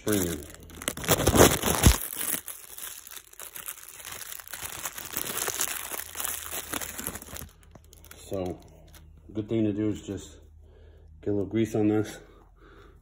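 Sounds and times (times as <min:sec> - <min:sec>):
rustling and crinkling handling noise: 0:00.0 - 0:09.3.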